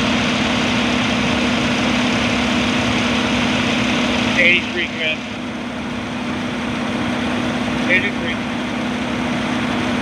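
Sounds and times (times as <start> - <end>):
fire engine idling: 0.0 - 10.0.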